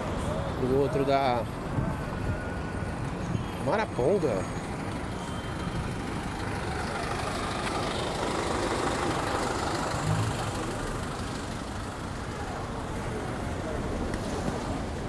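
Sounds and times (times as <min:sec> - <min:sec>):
traffic noise: 0:00.0 - 0:15.0
bus diesel engine rumbling: 0:04.1 - 0:15.0.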